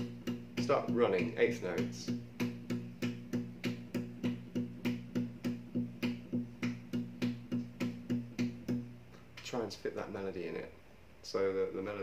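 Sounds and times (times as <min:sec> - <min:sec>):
acoustic guitar bass line: 0:00.0 - 0:10.6.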